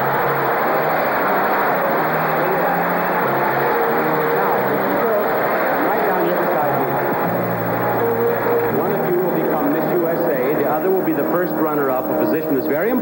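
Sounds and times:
audience applauding: 0.0s - 13.0s
faint orchestra playing: 0.0s - 13.0s.

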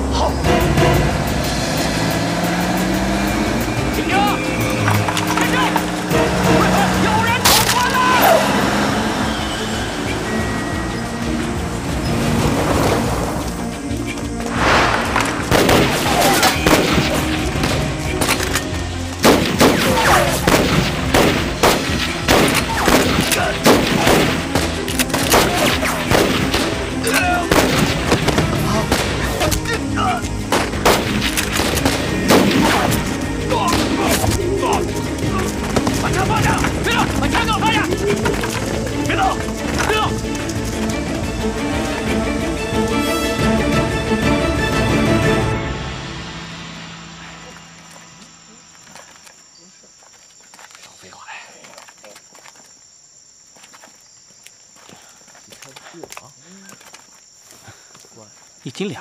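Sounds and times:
vehicle engine running: 0.0s - 19.6s
background music: 0.0s - 49.1s.

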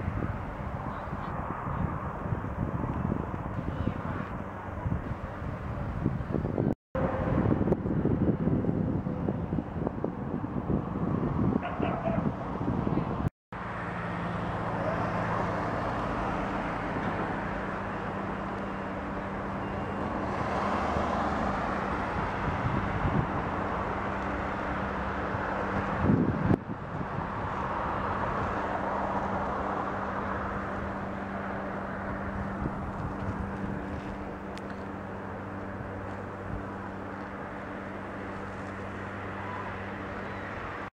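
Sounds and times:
low engine drone: 0.0s - 40.9s
road traffic hum: 0.0s - 40.9s.

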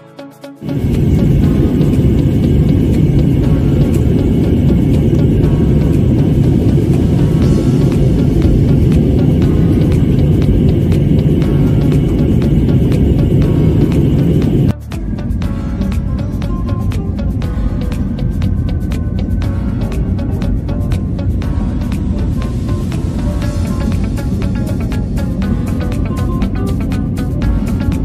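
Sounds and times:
faint background music: 0.0s - 28.0s
airliner cabin roar: 0.6s - 28.0s.

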